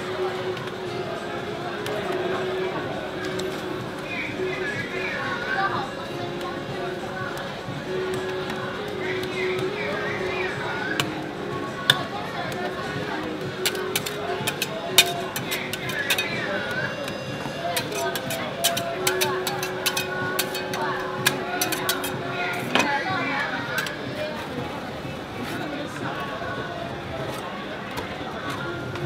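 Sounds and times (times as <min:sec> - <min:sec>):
music: 0:00.0 - 0:29.0
metal spatulas scraping on steel: 0:13.6 - 0:24.0.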